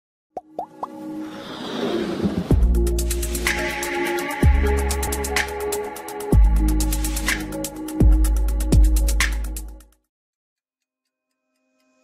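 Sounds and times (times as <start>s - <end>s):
musical build-up: 0.6s - 9.1s.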